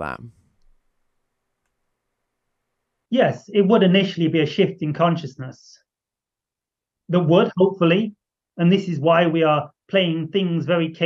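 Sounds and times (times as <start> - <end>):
man speaking: 3.1 - 5.8, 7.1 - 11.0.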